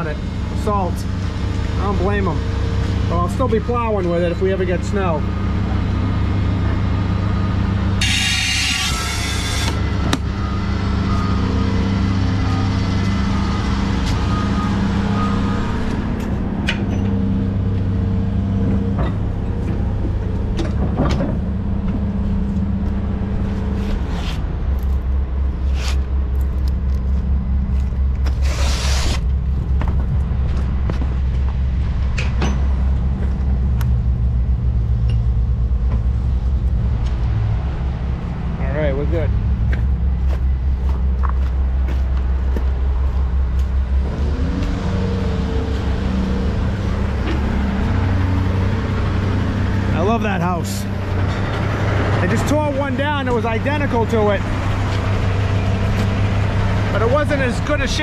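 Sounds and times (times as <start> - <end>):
diesel truck engine idling: 9.5 - 58.0.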